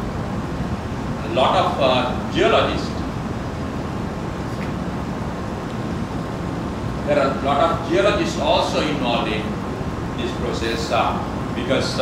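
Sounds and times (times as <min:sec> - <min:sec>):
air conditioning rumble: 0:00.0 - 0:12.0.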